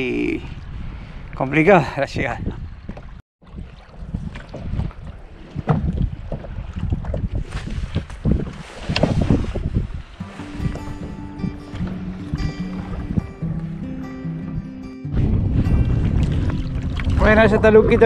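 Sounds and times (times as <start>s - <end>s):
wind buffeting microphone: 0.0s - 18.0s
water lapping at a kayak: 2.6s - 18.0s
background music: 10.2s - 18.0s.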